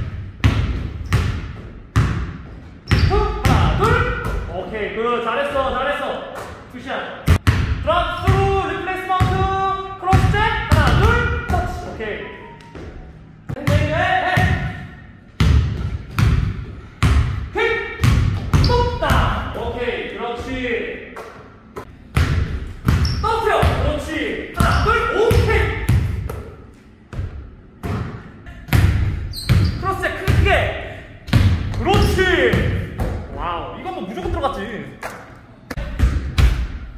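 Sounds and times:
basketball bouncing on wooden floor: 0.0s - 4.6s, 10.1s - 11.6s, 15.4s - 17.4s, 18.0s - 19.4s, 24.6s - 30.5s.

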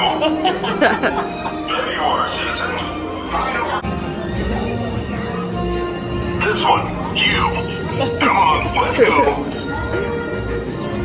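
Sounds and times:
music with held notes: 0.0s - 11.0s.

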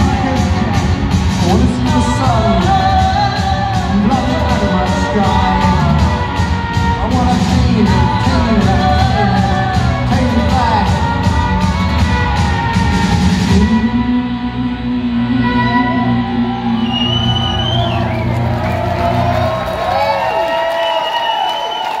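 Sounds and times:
drums: 0.0s - 14.0s, 16.3s - 22.0s
bass: 0.0s - 21.6s
gliding bending notes: 7.6s - 20.0s.

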